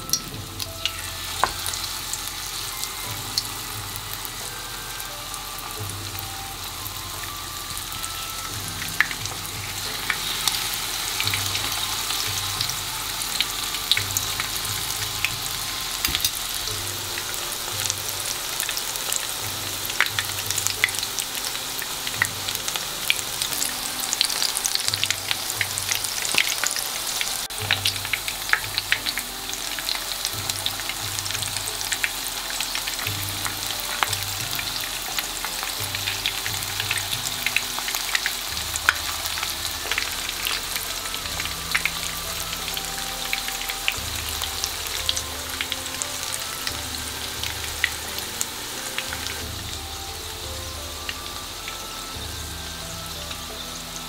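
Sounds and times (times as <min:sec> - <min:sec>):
food deep-frying in oil: 0:00.0 - 0:54.0.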